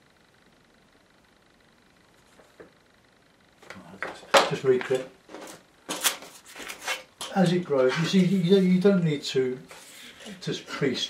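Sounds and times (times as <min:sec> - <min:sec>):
paper rustling and scraping: 0:04.8 - 0:08.8.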